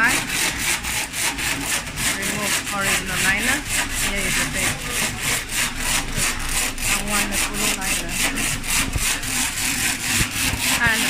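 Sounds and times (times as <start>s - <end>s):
die cutting machine strokes: 0.0s - 11.0s.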